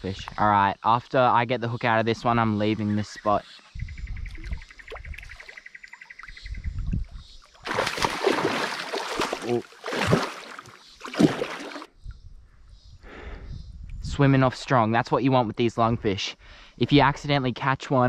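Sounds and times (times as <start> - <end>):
fish thrashing and splashing water: 7.6 - 11.9.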